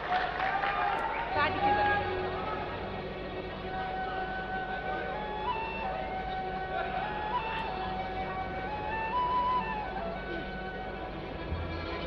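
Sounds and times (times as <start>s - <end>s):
orchestra of violins and qanun: 0.7s - 12.0s.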